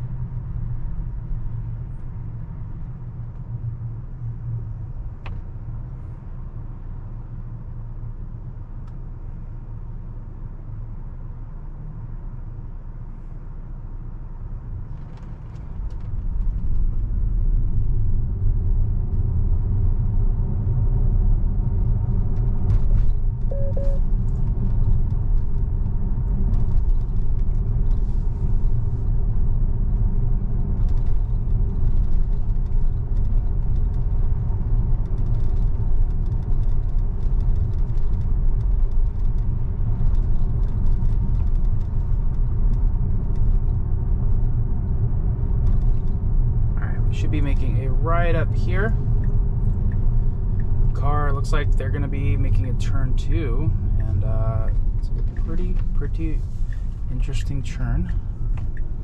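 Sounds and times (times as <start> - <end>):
road and tyre rumble in car: 0.0 - 59.0.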